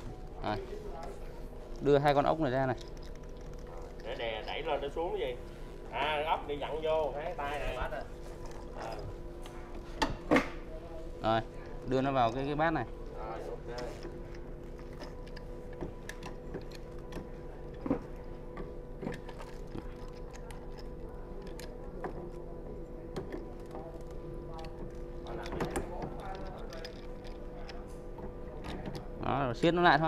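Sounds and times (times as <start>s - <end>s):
steady low hum: 0.0s - 30.0s
small clicks and knocks of metal parts: 1.7s - 4.7s, 11.3s - 22.5s, 23.1s - 30.0s.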